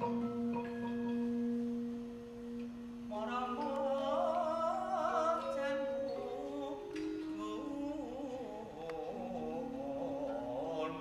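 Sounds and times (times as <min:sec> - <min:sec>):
gamelan ringing: 0:00.0 - 0:11.0.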